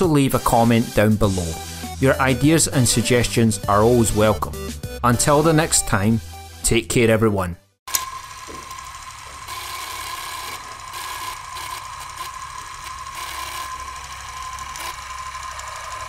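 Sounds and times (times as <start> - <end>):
film projector whirring: 7.9 - 16.0
thin steady whine: 7.9 - 16.0.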